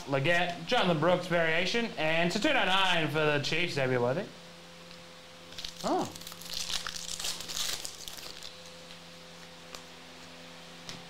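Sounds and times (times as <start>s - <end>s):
foil pack tearing and crinkling: 5.5s - 8.9s.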